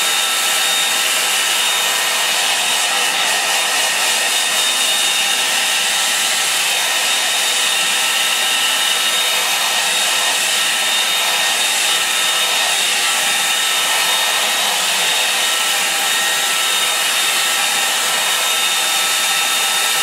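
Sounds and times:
hair dryer running: 0.0s - 20.0s.

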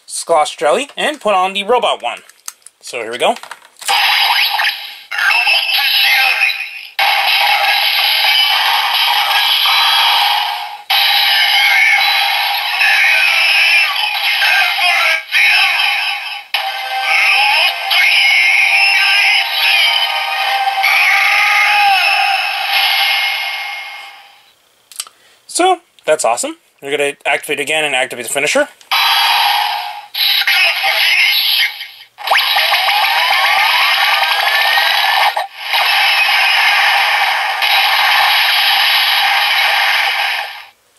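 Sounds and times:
toy electronic voice call-outs: 4.2s - 10.3s, 11.0s - 23.3s, 30.1s - 40.4s.

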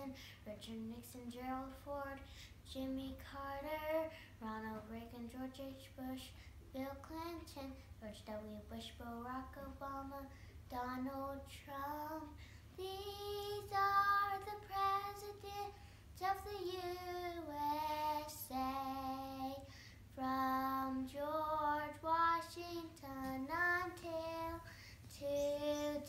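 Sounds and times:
girl singing unaccompanied: 0.0s - 26.0s.

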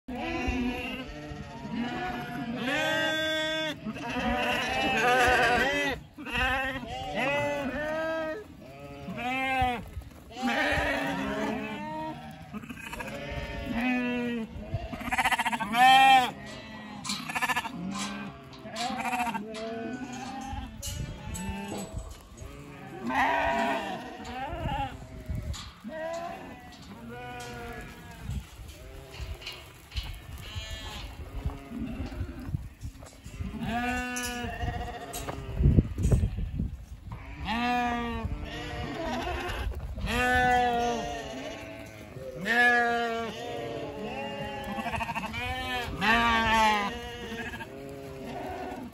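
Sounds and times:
lambs bleating: 0.1s - 32.5s, 33.2s - 36.5s, 37.1s - 48.9s.

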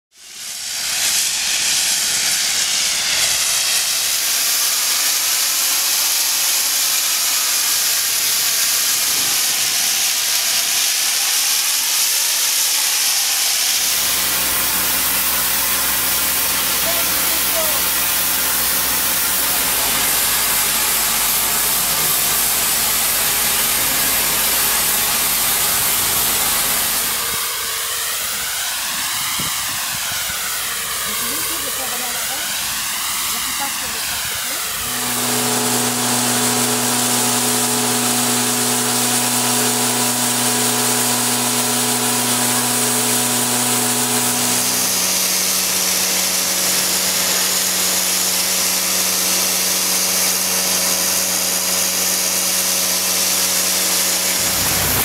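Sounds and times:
high-pressure water jet hissing: 0.2s - 55.0s
low machine hum: 13.8s - 55.0s.

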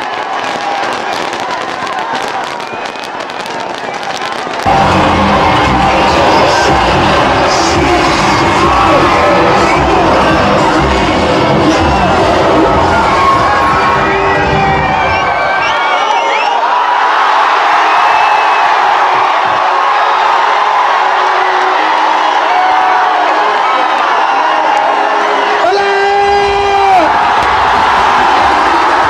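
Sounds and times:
crowd cheering and shouting: 0.0s - 29.0s
whistles: 2.5s - 4.2s, 14.7s - 16.7s, 17.9s - 18.7s
bass-heavy music: 4.7s - 15.3s.

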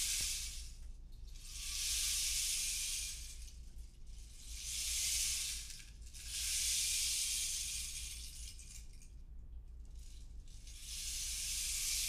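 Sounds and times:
shaken percussion hiss: 0.0s - 3.4s, 4.3s - 8.1s, 10.7s - 12.0s.

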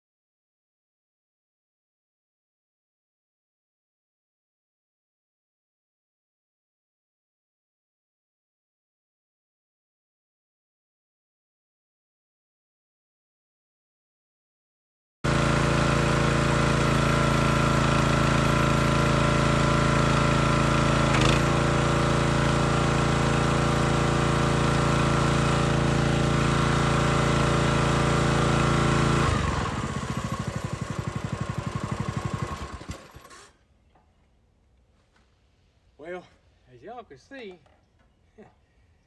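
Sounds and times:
log splitter gas engine running: 15.3s - 33.5s.

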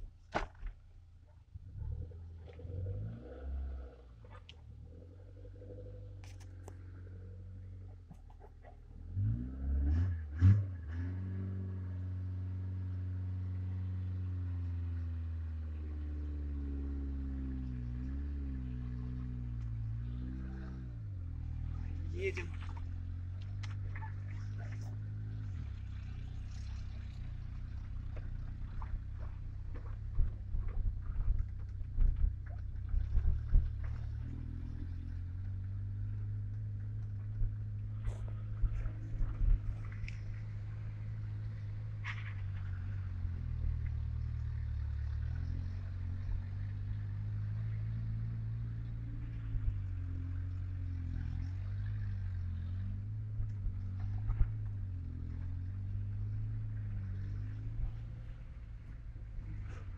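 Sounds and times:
car engine drone from inside: 0.0s - 59.9s.

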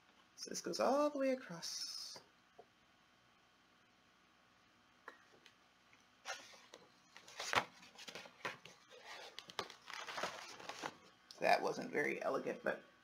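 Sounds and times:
book pages rustling: 6.2s - 11.1s.

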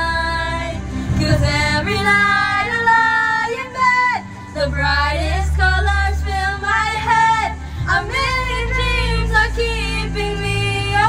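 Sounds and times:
girls singing into microphones: 0.0s - 11.0s.

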